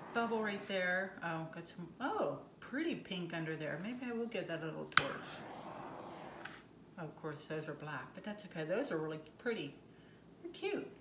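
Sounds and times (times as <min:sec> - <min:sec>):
torch flame hissing: 0:04.4 - 0:06.6
torch switch clicking: 0:04.9 - 0:05.3, 0:06.3 - 0:06.6.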